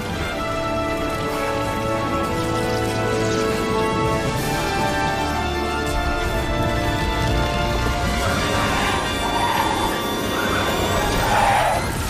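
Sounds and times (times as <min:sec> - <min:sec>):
dramatic orchestral music: 0:00.0 - 0:12.0
tyres skidding: 0:00.0 - 0:12.0.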